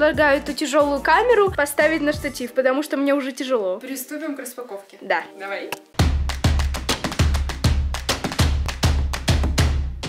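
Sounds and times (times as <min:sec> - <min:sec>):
upbeat electronic music: 0:00.0 - 0:02.7, 0:05.3 - 0:10.0.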